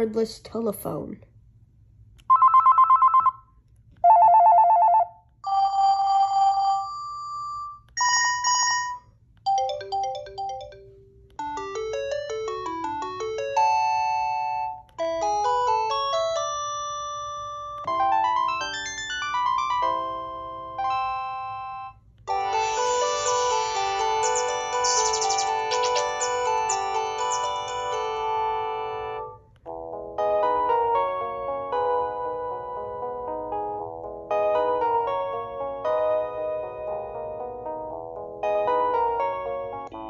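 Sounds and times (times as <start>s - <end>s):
electronic trilling phone rings: 2.3s - 3.4s, 4.0s - 6.9s, 21.2s - 29.2s
electronic ringtone melodies: 4.1s - 29.4s.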